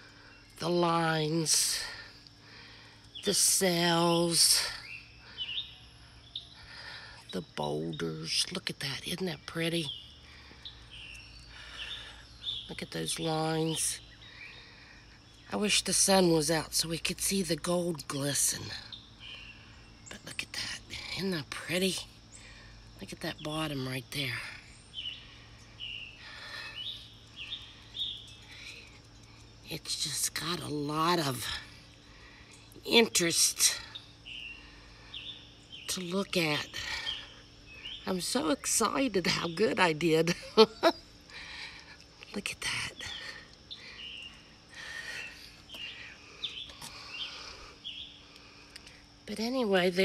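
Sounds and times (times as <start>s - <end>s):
bird chirping: 0.0s - 50.0s
faint steady hum: 0.0s - 50.0s.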